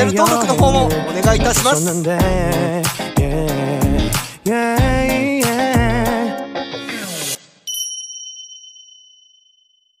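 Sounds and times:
bell-like ding: 0:07.7 - 0:10.0.

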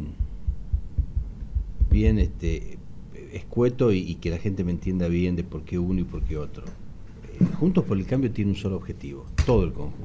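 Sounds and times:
soft low thumps and rumble: 0:00.0 - 0:02.8.

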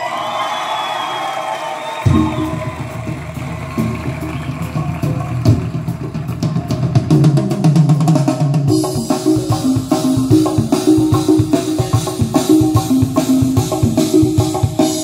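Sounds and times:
drums: 0:00.0 - 0:15.0
bass line: 0:02.1 - 0:07.4, 0:08.7 - 0:15.0
melodic lines: 0:08.7 - 0:15.0.

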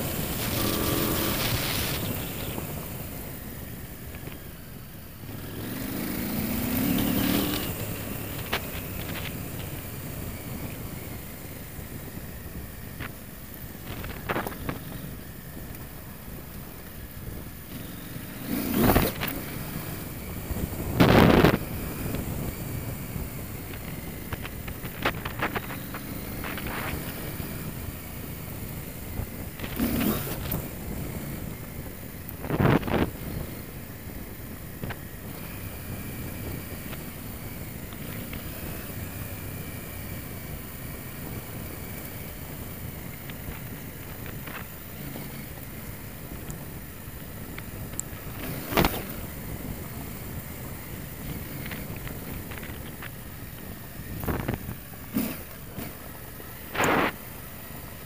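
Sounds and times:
short bursts of rushing noise: 0:00.0 - 0:02.7, 0:56.6 - 0:57.3
wind noise on microphone: 0:00.0 - 0:04.5, 0:18.4 - 0:57.8
motorcycle engine running: 0:00.0 - 0:58.0.

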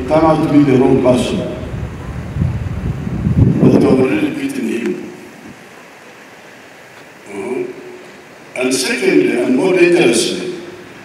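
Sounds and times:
man speaking amplified: 0:00.0 - 0:01.7, 0:03.6 - 0:05.2, 0:07.3 - 0:08.0, 0:08.6 - 0:10.8
background hiss: 0:00.0 - 0:11.0.

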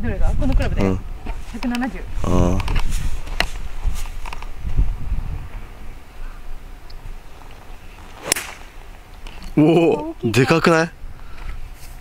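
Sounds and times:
golf club striking ball: 0:08.1 - 0:09.0.

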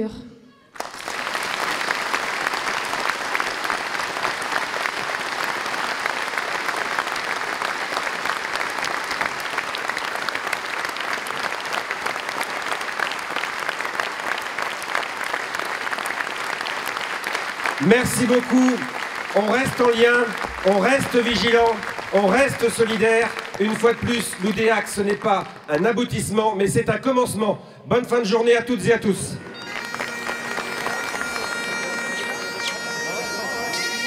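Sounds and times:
crowd applauding: 0:00.7 - 0:26.4, 0:29.3 - 0:34.0.

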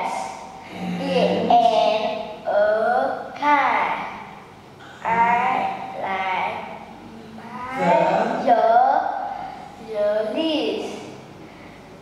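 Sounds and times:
child reading aloud: 0:00.0 - 0:04.4, 0:05.0 - 0:11.1.

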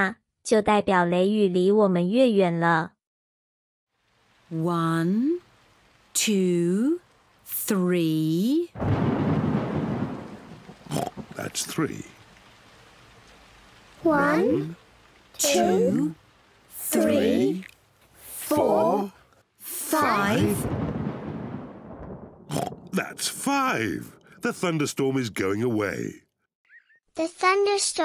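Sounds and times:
rain: 0:03.9 - 0:26.2
thunder crash: 0:08.8 - 0:12.2, 0:20.1 - 0:24.8.

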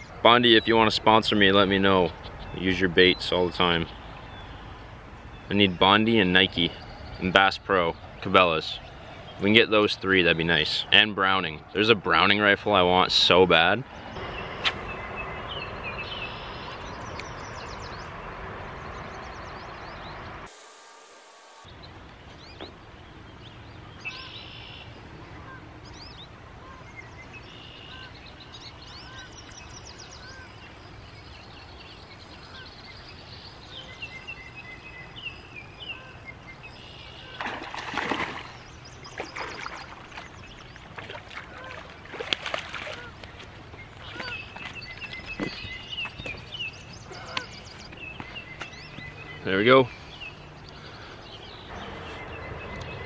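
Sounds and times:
songbirds chirping: 0:00.0 - 0:20.5, 0:21.6 - 0:53.0
steady hiss: 0:20.5 - 0:21.7
water splashing: 0:37.2 - 0:44.8.

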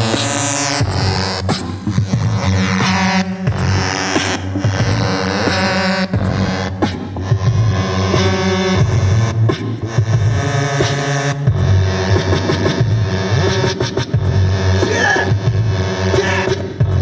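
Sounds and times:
electronic hip-hop music: 0:00.0 - 0:17.0.

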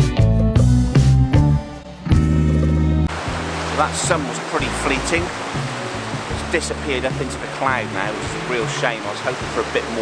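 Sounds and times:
waves washing on beach: 0:03.1 - 0:10.0.

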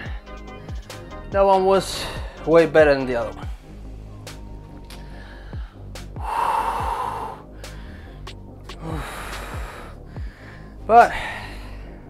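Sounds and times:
man breathing hard: 0:00.0 - 0:01.2, 0:01.9 - 0:02.5, 0:04.9 - 0:12.0.

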